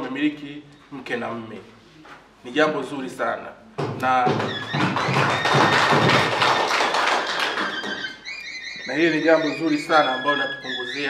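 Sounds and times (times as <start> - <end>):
audience clapping: 4.3 - 8.2.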